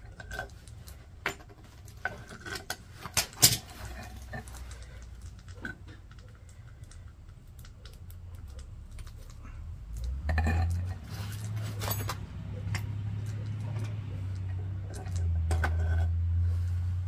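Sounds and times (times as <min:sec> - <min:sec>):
metal tools clicking and clinking: 0:00.0 - 0:09.4, 0:10.0 - 0:16.1
low steady rumble: 0:00.0 - 0:17.0.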